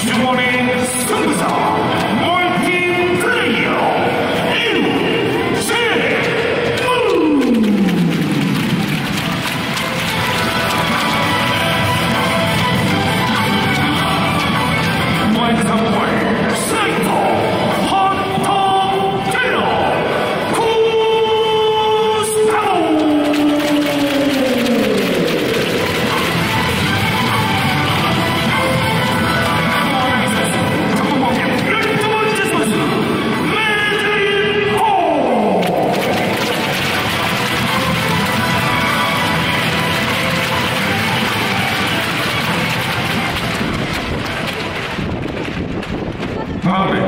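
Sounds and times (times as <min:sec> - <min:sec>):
announcer calling over loudspeakers: 0:00.0 - 0:08.6, 0:15.0 - 0:36.7
dense noisy wash: 0:42.6 - 0:47.0.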